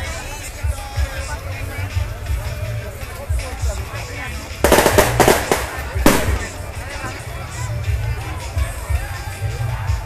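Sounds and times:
firecrackers crackling: 4.6 - 7.1
loud firecracker bang: 4.7 - 6.7.

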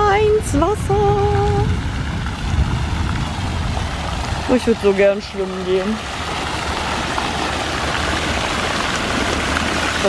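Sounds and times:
fountain water splashing: 0.0 - 10.0.

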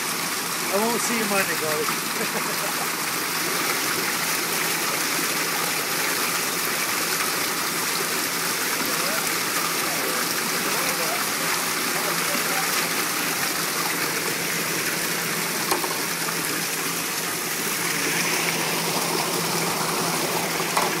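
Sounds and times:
water flowing through tanks: 0.0 - 21.0.

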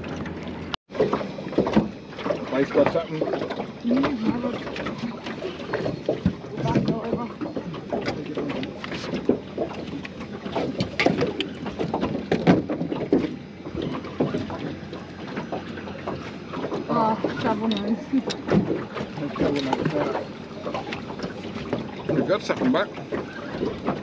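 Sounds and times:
water slapping against boat hull: 0.0 - 24.0
fishing gear knocking and clattering: 5.7 - 24.0.

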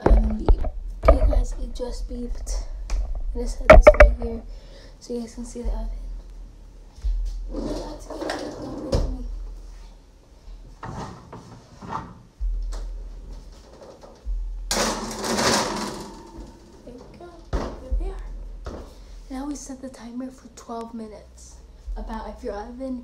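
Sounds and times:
metal baking tray scraping on rack: 7.5 - 9.0.

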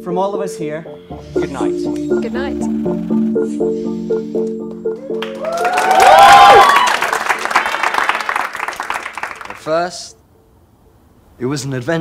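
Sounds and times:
background music: 0.0 - 6.7
audience cheering: 5.0 - 9.6
audience applauding: 5.0 - 9.9.

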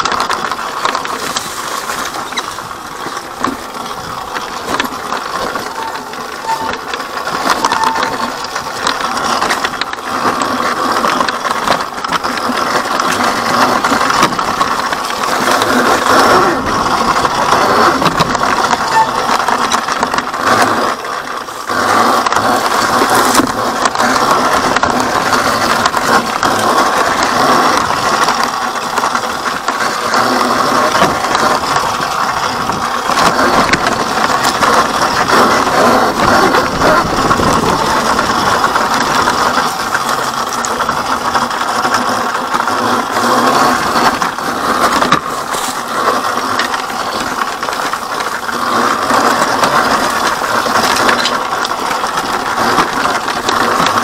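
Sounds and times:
bike parts rattling: 0.0 - 54.0
tyres crunching over rocks: 0.0 - 54.0.

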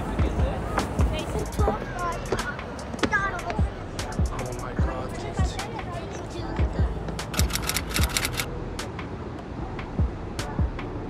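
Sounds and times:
background music with beat: 0.0 - 11.0
kick drum: 0.2 - 2.4, 3.0 - 5.6, 6.6 - 7.2, 10.0 - 10.8
hi-hat ticks: 3.4 - 4.8, 7.2 - 9.0.

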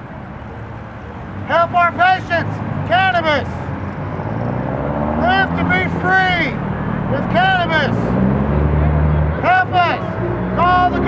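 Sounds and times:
car engine accelerating: 2.2 - 11.0
person shouting: 5.2 - 6.6, 10.6 - 11.0.

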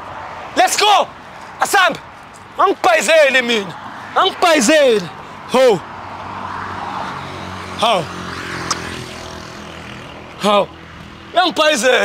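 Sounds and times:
car driving past: 5.4 - 11.3.

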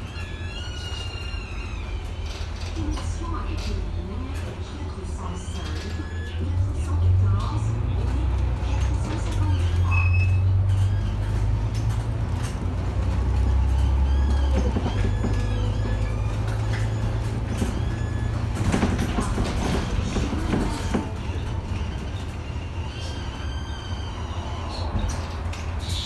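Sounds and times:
bus engine drone: 0.0 - 26.0
bus fittings rattling and creaking: 0.0 - 26.0.

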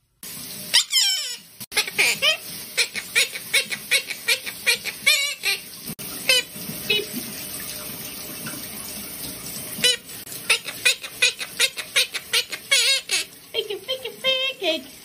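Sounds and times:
parrot mimicking speech: 0.8 - 5.6, 9.8 - 14.8.

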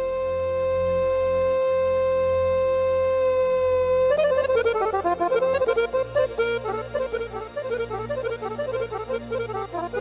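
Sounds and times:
fast accordion-like runs: 0.0 - 10.0
sustained low backing: 0.0 - 10.0.

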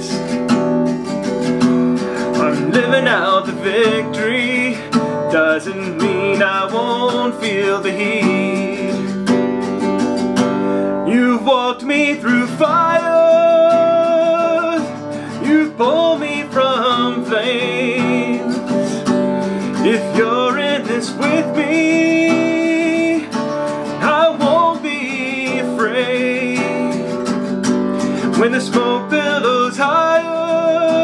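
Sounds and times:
acoustic guitar strumming: 0.0 - 31.0.

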